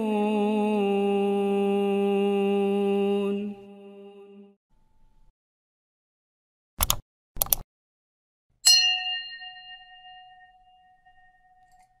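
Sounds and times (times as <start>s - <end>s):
bell ding: 8.6s - 12.0s.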